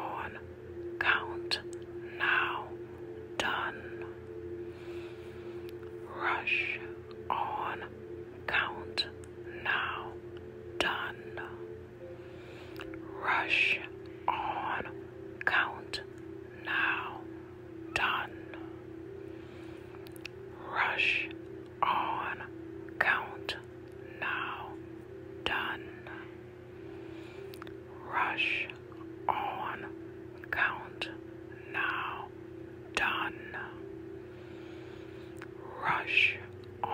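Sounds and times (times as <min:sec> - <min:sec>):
person whispering: 0:00.0 - 0:00.4, 0:01.0 - 0:02.8, 0:03.4 - 0:04.2, 0:06.0 - 0:10.2, 0:10.8 - 0:11.7, 0:12.8 - 0:17.3, 0:17.9 - 0:18.8, 0:20.0 - 0:24.8, 0:25.4 - 0:26.4, 0:27.5 - 0:32.3, 0:32.9 - 0:33.8, 0:35.4 - 0:36.9
low droning tone: 0:00.0 - 0:36.9.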